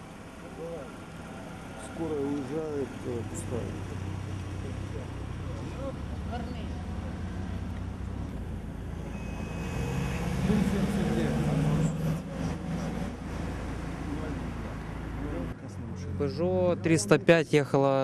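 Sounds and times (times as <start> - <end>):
vehicle engine idling: 0.0 - 17.4
short electronic beep: 9.0 - 10.9
murmured voices: 9.0 - 17.4.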